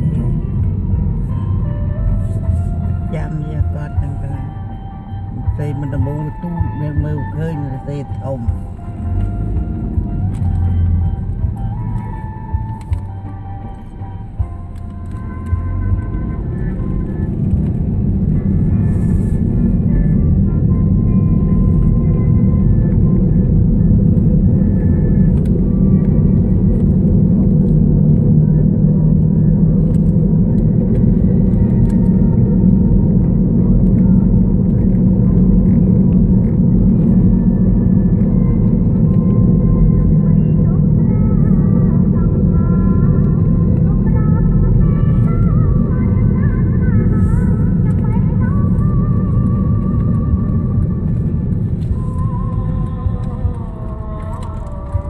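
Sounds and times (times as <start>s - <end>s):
car road and engine rumble: 0.0s - 55.0s
faint music: 0.0s - 55.0s.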